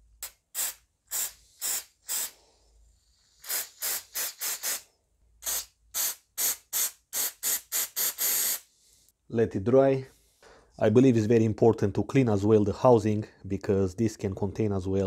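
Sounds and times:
aerosol spray hissing bursts: 0.2 - 2.4, 3.3 - 8.7.

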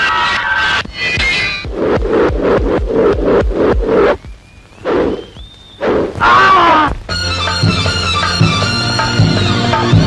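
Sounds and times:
fast drum beats: 1.6 - 4.4, 6.2 - 10.0.

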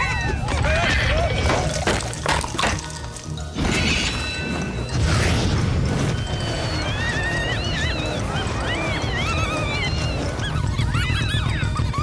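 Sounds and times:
cartoon music with pulsing beat: 2.8 - 12.0
high squeaky calls: 6.0 - 12.0.

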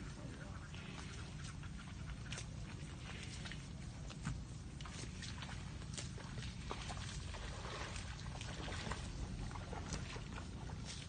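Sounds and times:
low steady rumble: 0.0 - 11.0
water buffalo chewing grass: 0.0 - 11.0.

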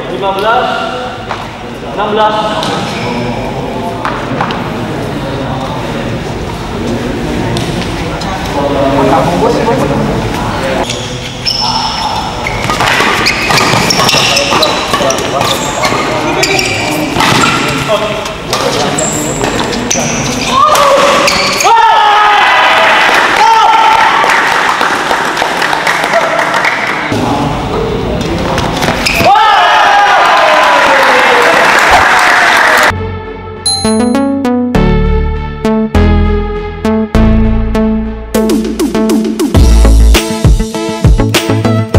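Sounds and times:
shoes squeaking on court: 10.8 - 17.9, 18.6 - 21.6, 28.6 - 29.3
spectators shouting and cheering: 20.5 - 24.9, 29.2 - 32.9.

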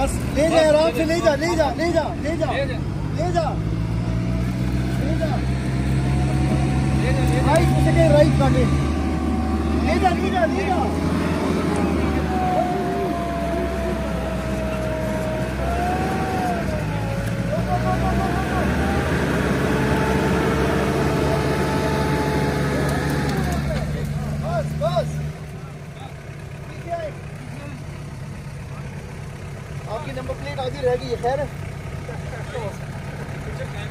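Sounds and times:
engines working hard under load: 0.0 - 33.9.

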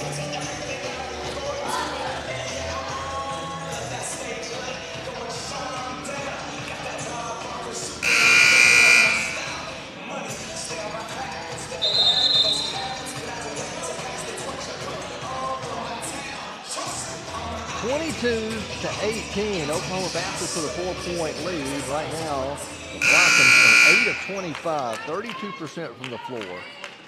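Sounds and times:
scoreboard horn: 8.0 - 9.7, 23.0 - 24.5
short high whistle: 11.8 - 12.8.

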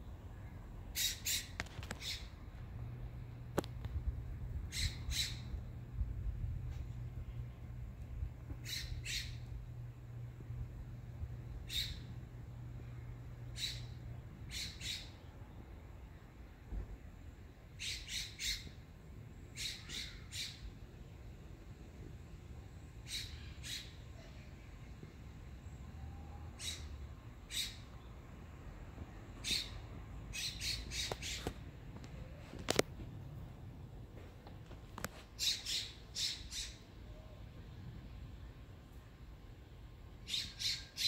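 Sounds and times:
low steady rumble: 0.0 - 35.1
bird calling: 0.9 - 2.4, 4.7 - 5.6, 8.5 - 9.5, 11.6 - 12.2, 13.5 - 15.3, 17.8 - 18.8, 19.5 - 20.7, 23.0 - 24.4, 26.0 - 28.0, 29.4 - 31.6, 35.4 - 37.4, 40.2 - 41.0.

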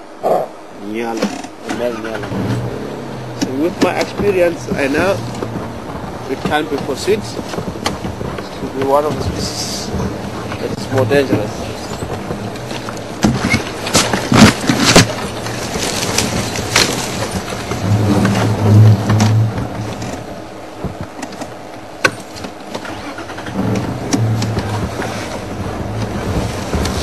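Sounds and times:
sharp knocks: 1.2 - 20.2, 20.8 - 22.8
vehicle engine droning: 1.5 - 27.0.

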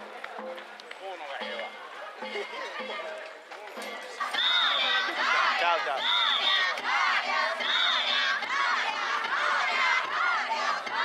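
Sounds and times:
crowd shouting rhythmic calls: 3.8 - 11.0
shrill whistle blasts: 6.0 - 6.8.

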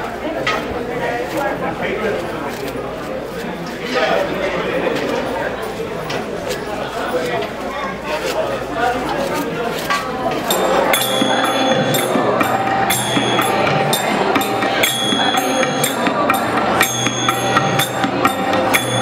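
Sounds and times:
crowd chatter: 0.0 - 19.0
group singing: 10.4 - 19.0
small hand cymbals: 10.4 - 19.0
tabla: 10.5 - 19.0.

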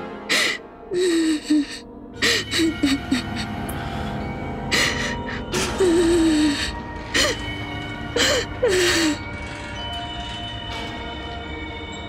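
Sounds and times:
background music score: 0.0 - 12.0
woman crying: 0.3 - 3.5, 4.7 - 7.5.

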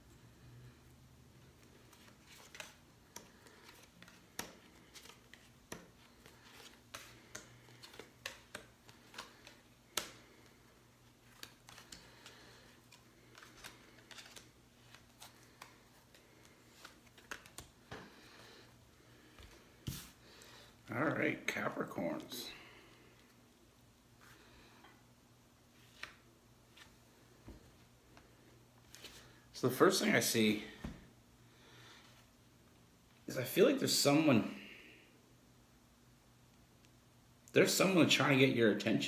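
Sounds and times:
low room hum: 0.0 - 39.0
cards clicking and tapping: 1.9 - 10.6, 11.2 - 18.1.

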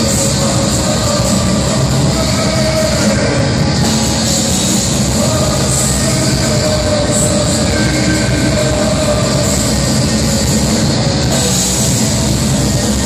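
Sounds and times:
metal band playing live: 0.0 - 13.0.

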